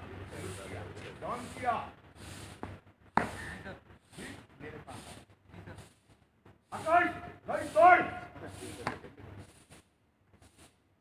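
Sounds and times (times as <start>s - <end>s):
man shouting commands: 6.8s - 8.4s.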